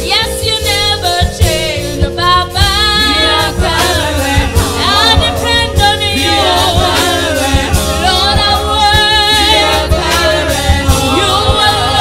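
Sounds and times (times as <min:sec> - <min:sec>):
woman singing through microphone: 0:00.0 - 0:12.0
low drum beats: 0:01.2 - 0:12.0.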